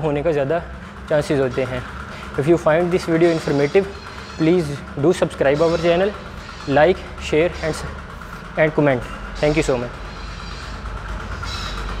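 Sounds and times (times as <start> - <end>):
machinery hum and rumble: 0.0 - 12.0.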